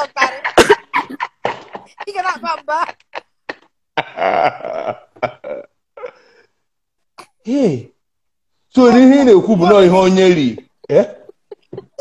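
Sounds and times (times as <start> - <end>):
man laughing hard: 0.2 - 5.7, 9.7 - 12.0.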